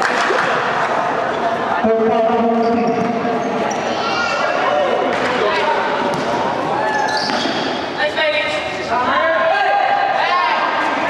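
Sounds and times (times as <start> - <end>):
people calling and shouting: 0.6 - 11.0.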